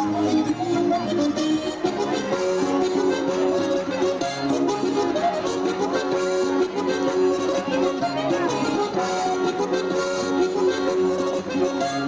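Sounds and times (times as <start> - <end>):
accordion melody: 0.0 - 12.0
fandango dance music: 0.0 - 12.0.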